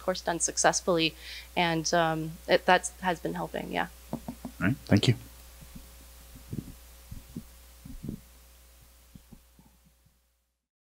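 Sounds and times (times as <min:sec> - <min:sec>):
low electrical hum: 0:00.0 - 0:10.6
soft low thumps: 0:05.6 - 0:08.3.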